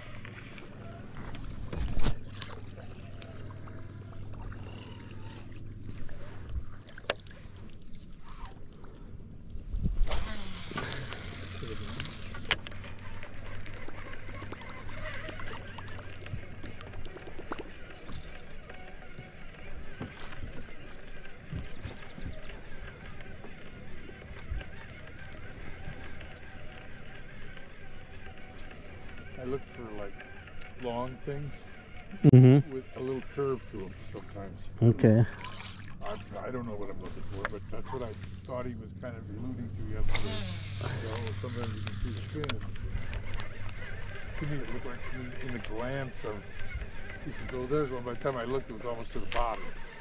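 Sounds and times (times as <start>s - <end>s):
electric trolling motor humming: 0.0s - 50.0s.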